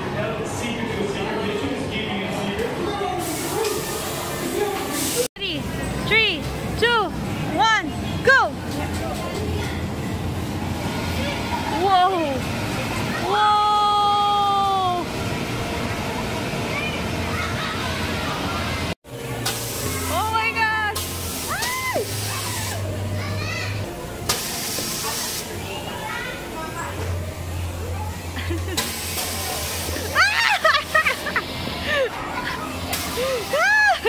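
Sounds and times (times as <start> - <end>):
indoor play area hubbub: 0.0 - 34.0
hissing air bursts: 4.9 - 5.3, 19.4 - 20.3, 21.0 - 22.9, 24.3 - 25.6, 28.8 - 30.2
children shouting: 16.7 - 18.9.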